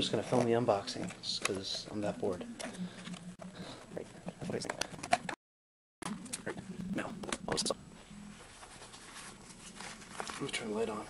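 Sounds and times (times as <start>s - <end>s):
plastic wrapping rustling: 8.3s - 11.0s.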